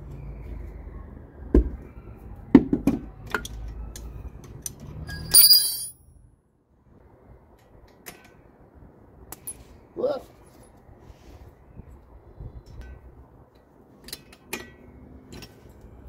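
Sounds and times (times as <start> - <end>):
spanner metallic clink: 5.1 - 5.9.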